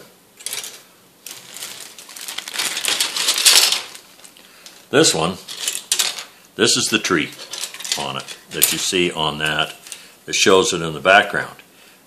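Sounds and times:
plastic bag crinkling: 0.4s - 6.3s, 7.2s - 10.0s.

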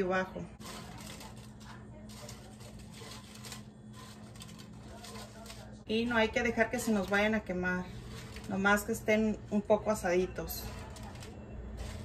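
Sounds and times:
dried chiles rustling on a pan: 0.0s - 12.0s.

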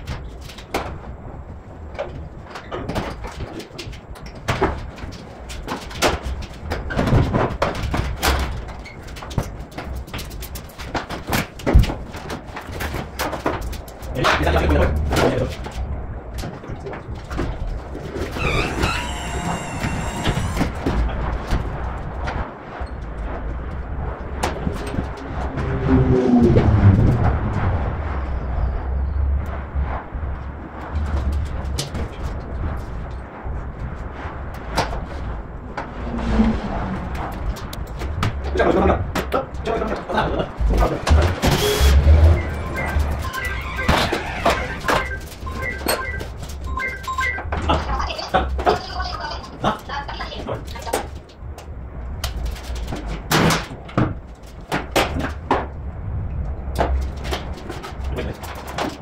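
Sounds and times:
wavering high-pitched sound: 25.3s - 27.4s, 41.5s - 47.5s.

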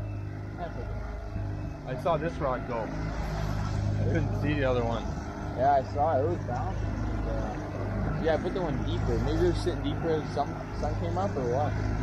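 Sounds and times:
outboard motor running: 0.0s - 12.0s.

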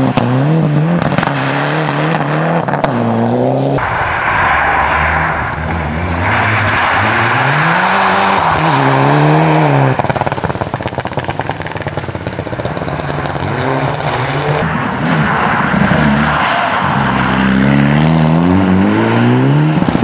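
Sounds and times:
exhaust rapid crackling: 3.8s - 15.1s.

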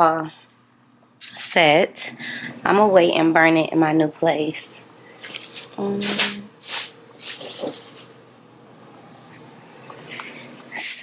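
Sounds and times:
rustling and handling noises: 5.2s - 8.2s
person humming briefly: 5.8s - 6.5s.

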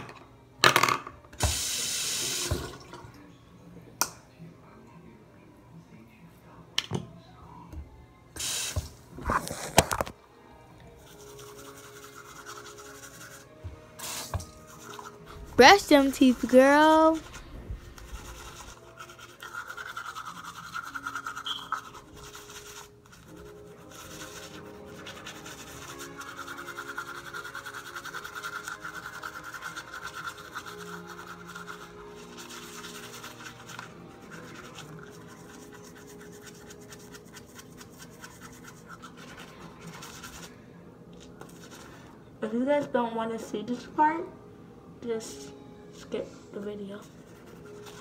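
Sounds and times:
toothbrush scrubbing teeth: 10.9s - 40.6s, 47.0s - 48.0s.

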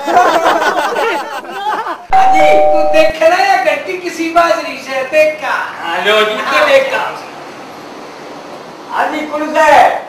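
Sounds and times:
doorbell two-note chime: 2.1s - 3.1s.

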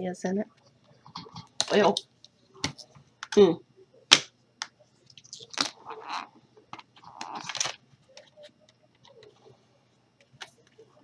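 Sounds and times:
plastic scraping and crinkling: 7.0s - 9.4s.

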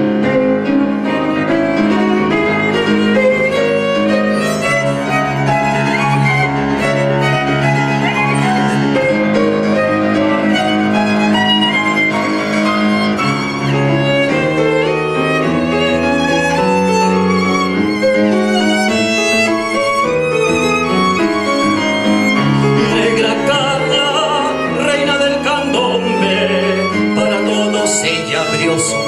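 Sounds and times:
grand piano playing: 0.0s - 29.0s
violin bowing long notes: 0.0s - 29.0s.

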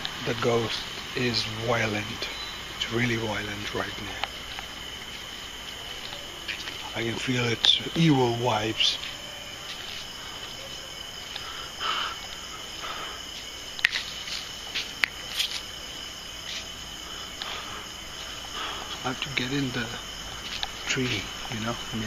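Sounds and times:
crickets trilling: 0.0s - 22.0s
soft rustles: 3.7s - 22.0s.

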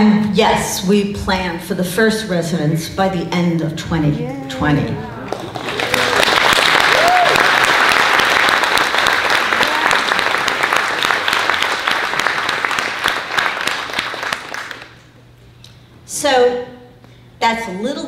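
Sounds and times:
audience applauding: 5.2s - 15.0s
cheering whoop: 5.7s - 7.7s, 9.5s - 10.2s.

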